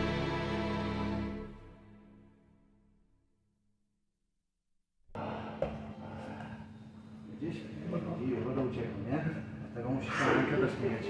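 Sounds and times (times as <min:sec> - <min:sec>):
steady low hum: 0:05.1 - 0:11.0.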